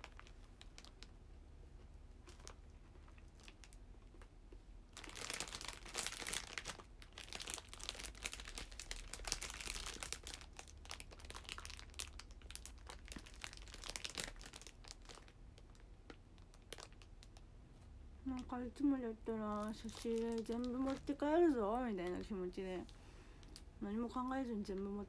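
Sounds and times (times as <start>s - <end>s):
plastic wrapper crinkling: 0.0s - 1.2s, 2.2s - 17.5s, 18.3s - 25.0s.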